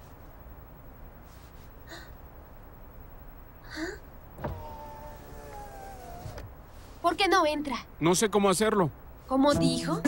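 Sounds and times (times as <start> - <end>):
car power window motor whine: 4.4 - 6.6.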